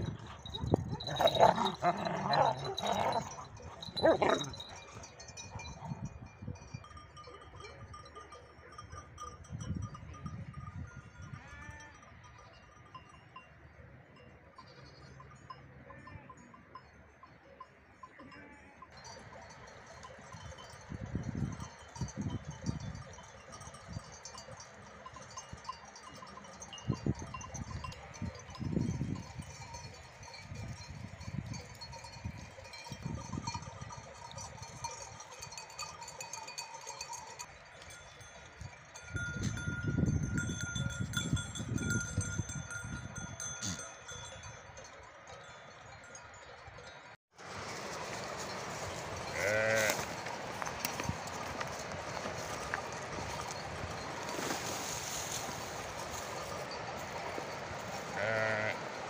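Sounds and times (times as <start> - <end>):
animal bells ringing: 0.0 - 59.0
sheep and goats bleating: 0.3 - 5.1, 11.2 - 12.1, 18.2 - 18.9, 47.8 - 59.0.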